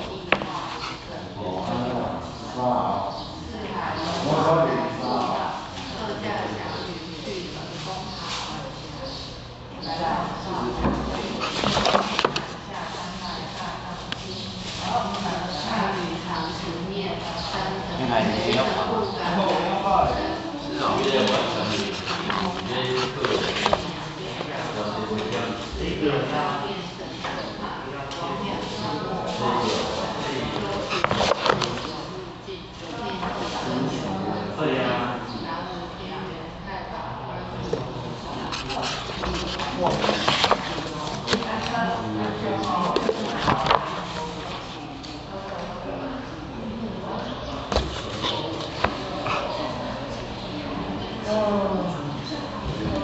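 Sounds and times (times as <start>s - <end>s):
voices in background: 0.0s - 53.0s
paper pages turning: 11.4s - 12.6s, 21.0s - 23.9s, 30.8s - 32.0s, 38.5s - 41.8s, 42.8s - 45.1s.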